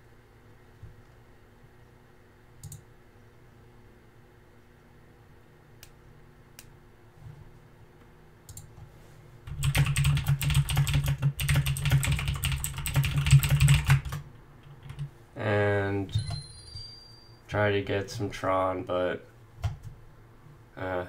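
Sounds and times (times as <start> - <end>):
rapid keyboard typing: 9.5 - 15.1.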